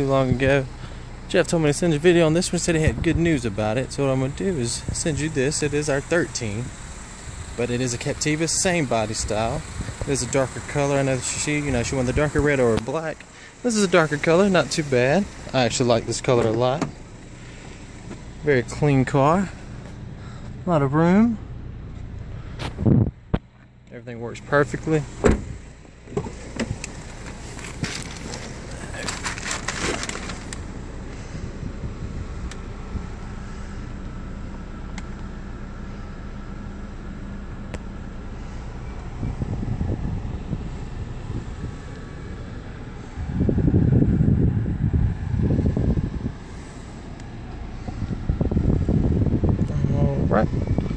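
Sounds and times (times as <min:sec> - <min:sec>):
car cabin hum: 0:00.0 - 0:50.9
rumbling: 0:24.4 - 0:35.0.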